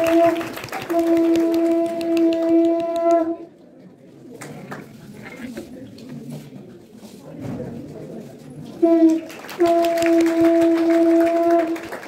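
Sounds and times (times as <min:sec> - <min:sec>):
conch shell blown: 0:00.0 - 0:03.5, 0:08.8 - 0:12.0
room noise: 0:00.0 - 0:12.0.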